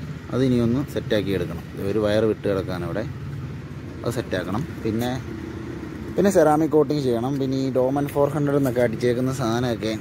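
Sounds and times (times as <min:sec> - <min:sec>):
man talking: 0:00.2 - 0:03.2, 0:03.9 - 0:05.3, 0:06.1 - 0:10.0.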